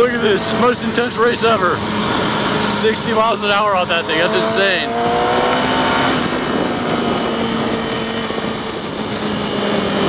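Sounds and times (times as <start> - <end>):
motorcycle engine cruising: 0.0 - 10.0
wind rush on microphone: 0.0 - 10.0.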